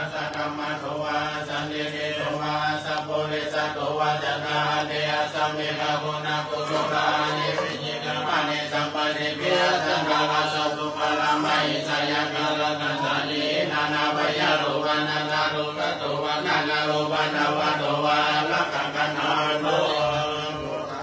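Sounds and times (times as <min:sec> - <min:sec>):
group chanting in unison: 0:00.0 - 0:21.0.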